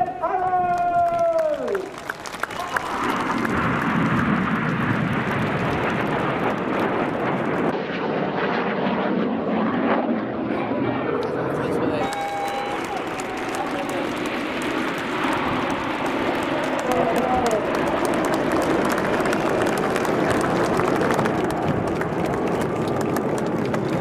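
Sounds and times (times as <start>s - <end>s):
person shouting: 0.0s - 1.8s, 12.0s - 13.1s
jet noise rushing: 11.6s - 23.7s.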